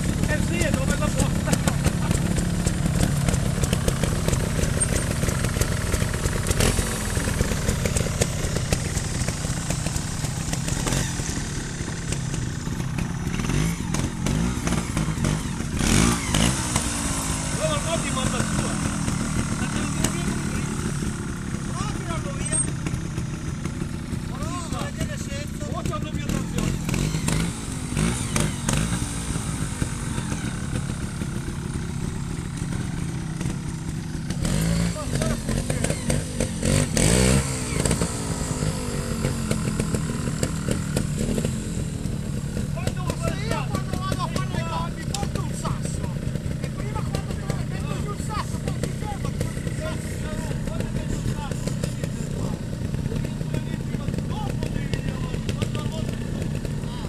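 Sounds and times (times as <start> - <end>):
motorcycle engine idling: 0.0 - 57.0
motorcycle engine revving: 0.0 - 57.0.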